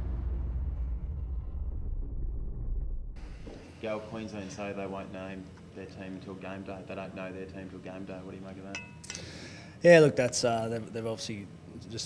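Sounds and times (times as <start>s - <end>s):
deep low rumble: 0.0s - 3.4s.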